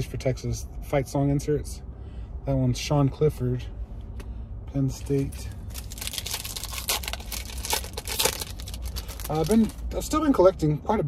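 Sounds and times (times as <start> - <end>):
wrapper crinkling: 5.7 - 9.8.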